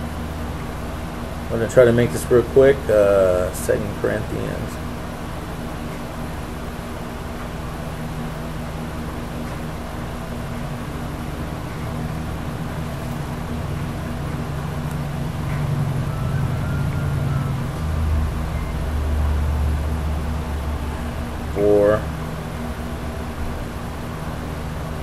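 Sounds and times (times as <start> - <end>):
low mechanical rumble with hum: 0.0 - 25.0.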